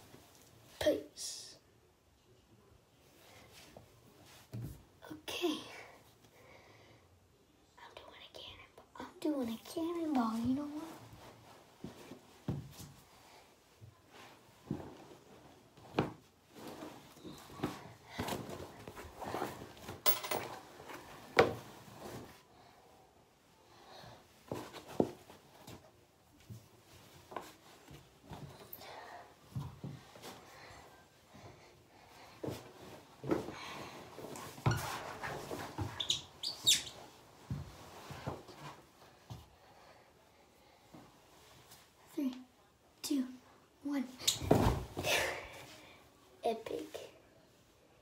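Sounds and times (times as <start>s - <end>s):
cloth rustling: 32.1s - 39.3s.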